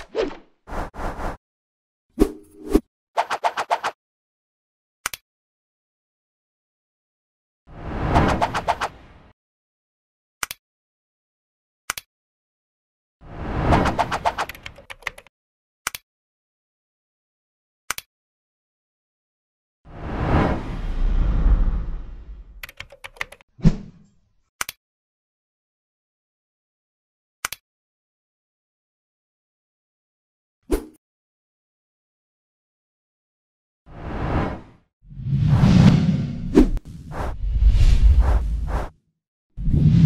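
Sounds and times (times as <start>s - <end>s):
keyboard typing clicks: 22.6s - 23.4s
swish: 34.0s - 39.0s, 39.6s - 40.0s.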